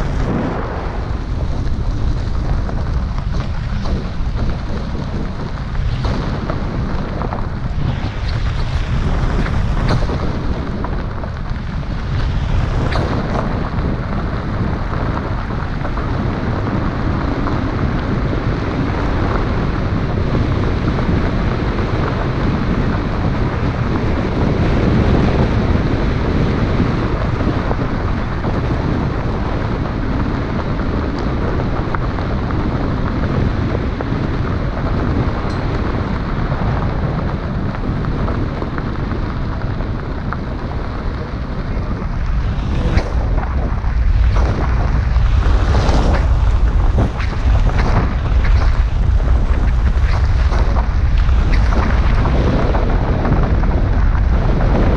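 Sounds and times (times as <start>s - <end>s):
tyres rumbling on gravel: 0.0s - 54.9s
wind buffeting microphone: 0.0s - 54.9s.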